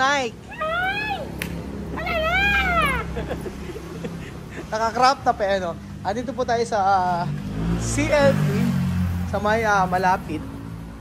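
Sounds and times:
woman's playful high-pitched cry: 0.4s - 3.4s.

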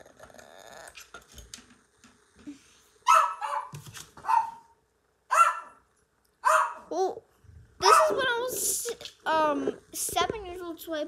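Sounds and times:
dog barking: 3.0s - 5.8s, 6.4s - 6.9s, 7.8s - 8.2s.

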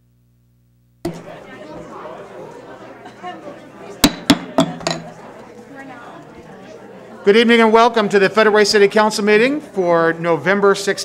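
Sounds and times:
gavel knocking: 4.0s - 5.1s.

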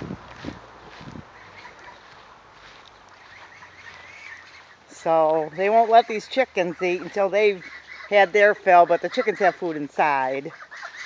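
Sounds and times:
distant bird calls: 1.2s - 11.0s.

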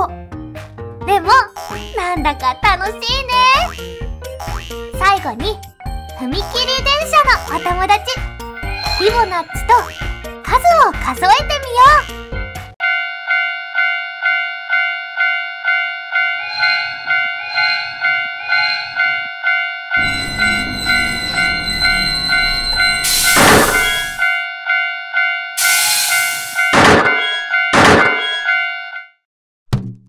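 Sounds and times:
railroad crossing bell ringing: 8.4s - 9.7s, 12.8s - 29.2s
steam train chugging: 20.0s - 24.2s, 25.6s - 26.7s
steam hiss bursts: 23.0s - 24.2s, 25.6s - 26.6s.

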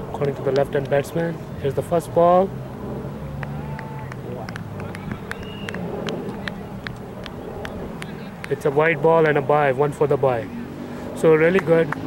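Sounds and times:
faint distant voices: 0.0s - 12.0s
steady low hum: 0.0s - 12.0s.

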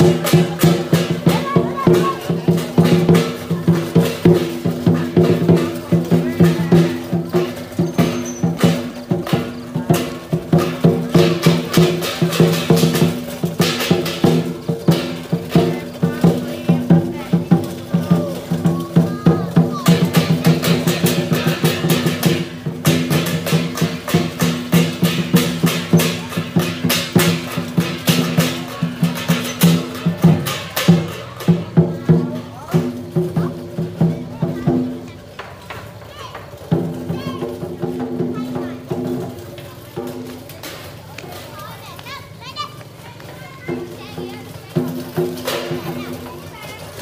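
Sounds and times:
cymbals crashing: 0.0s - 35.1s, 43.6s - 46.5s
children chattering and calling out: 0.0s - 47.0s
drum beat: 0.0s - 47.0s
percussion strokes ringing: 0.0s - 47.0s.

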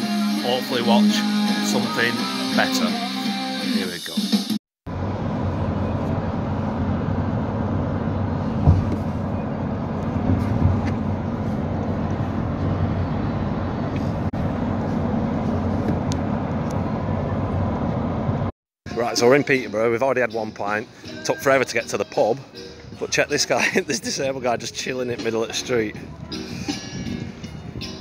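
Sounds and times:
coach engine and road rumble: 4.9s - 28.0s.

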